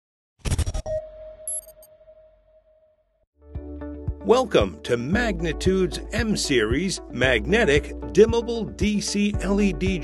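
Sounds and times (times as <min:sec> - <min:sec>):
held tone: 0:00.9 - 0:02.9
high chime-like notes: 0:01.2 - 0:02.7.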